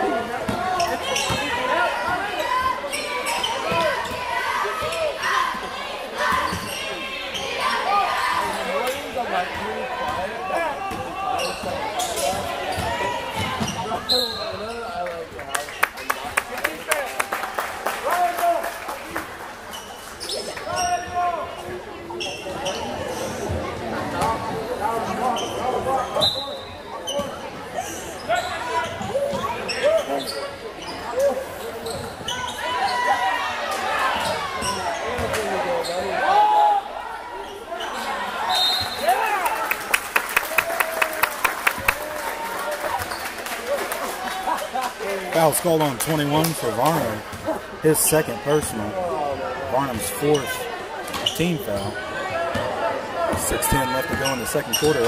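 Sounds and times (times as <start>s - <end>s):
voices and shouts: 0.0s - 15.0s, 24.0s - 55.0s.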